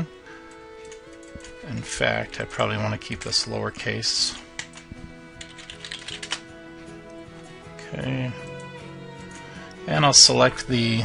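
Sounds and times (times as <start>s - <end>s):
typing on computer keyboard: 0.8s - 1.5s, 4.6s - 6.4s.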